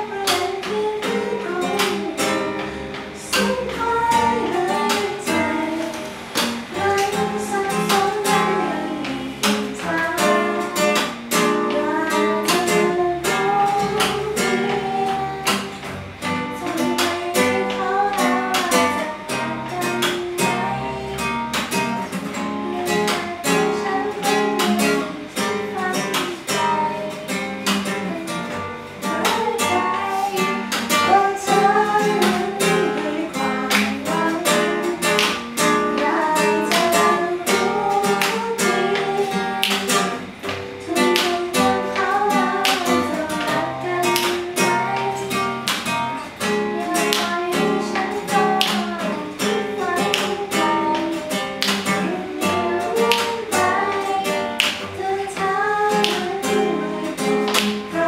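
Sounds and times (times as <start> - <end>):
classical guitar strumming: 0.0 - 58.0
woman singing: 0.0 - 58.0.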